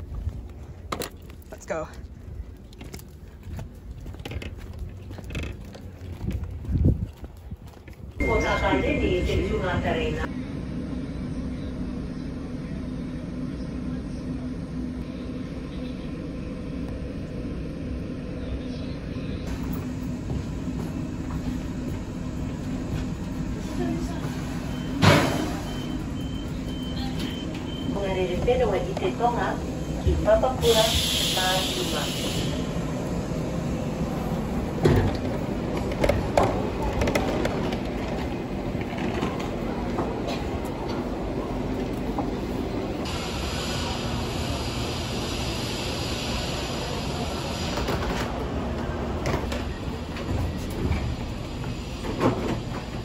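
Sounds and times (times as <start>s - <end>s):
low hum inside vehicle: 8.2s - 24.9s
hissing air: 30.6s - 33.0s.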